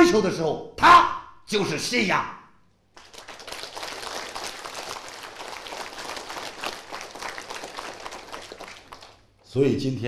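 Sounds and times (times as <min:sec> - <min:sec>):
audience applauding: 0:03.0 - 0:09.4.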